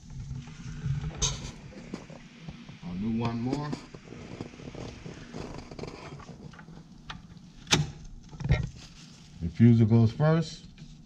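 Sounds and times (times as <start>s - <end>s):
background room noise: 0.0s - 11.0s.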